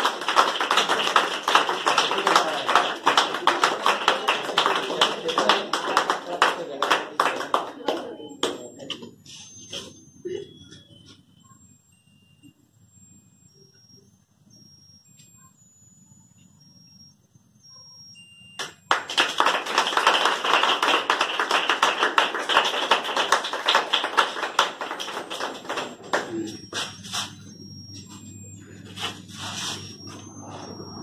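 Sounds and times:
group applauding: 0:00.0 - 0:09.1, 0:18.6 - 0:27.3
electronic candle melody: 0:00.0 - 0:31.0.

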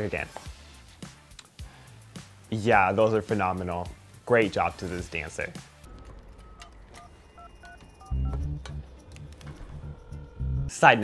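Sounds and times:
phone keypad beeps: 0:05.9 - 0:09.1
low pulsing bass: 0:08.1 - 0:10.7.

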